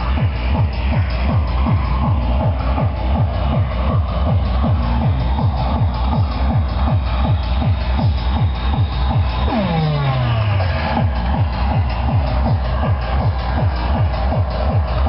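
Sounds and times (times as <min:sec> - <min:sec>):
fast dance music: 0:00.0 - 0:15.0
pounding kick drum: 0:00.0 - 0:15.0
falling pitch sweep: 0:09.4 - 0:11.7.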